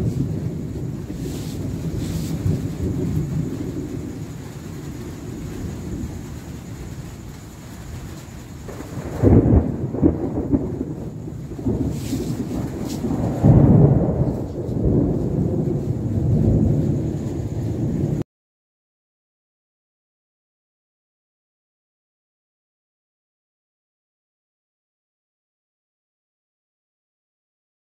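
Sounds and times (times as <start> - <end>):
thunder rumbling: 0.0 - 18.2.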